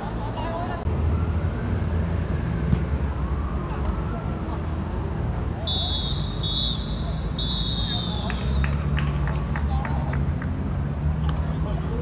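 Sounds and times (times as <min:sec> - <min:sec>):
referee's whistle blasts: 0:05.6 - 0:08.6.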